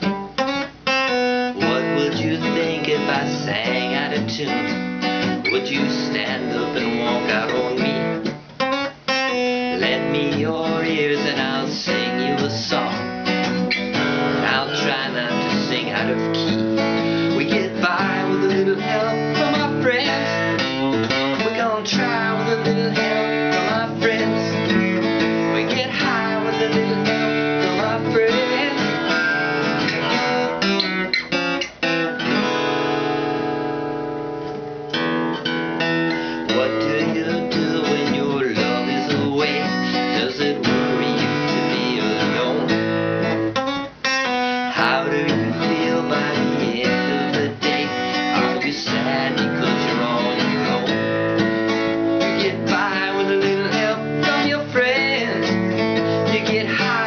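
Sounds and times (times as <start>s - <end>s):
acoustic guitar strumming: 0.0s - 57.0s
man singing: 1.5s - 8.4s, 9.4s - 31.0s, 36.1s - 43.6s, 44.5s - 57.0s.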